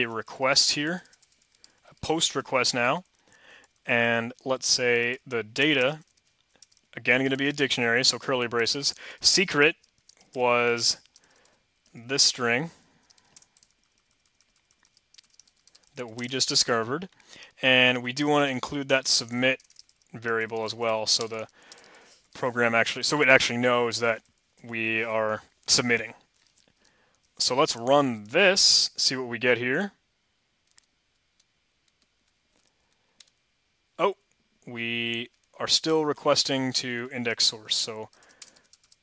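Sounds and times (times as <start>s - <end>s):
faint computer clicks: 1.0s - 2.1s, 6.0s - 7.6s, 13.0s - 16.0s, 19.2s - 22.4s, 38.1s - 39.0s
keyboard key presses: 13.0s - 16.0s.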